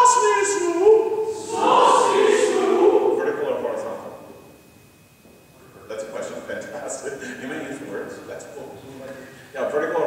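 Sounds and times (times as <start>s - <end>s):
men's chorus singing: 1.3s - 3.8s.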